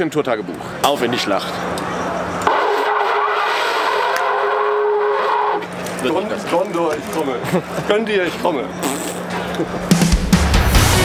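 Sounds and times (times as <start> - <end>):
horn blowing long note: 2.4 - 5.7.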